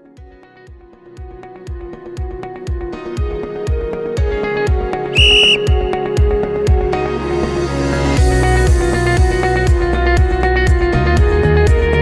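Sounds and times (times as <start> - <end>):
whistle blast: 5.2 - 6.5.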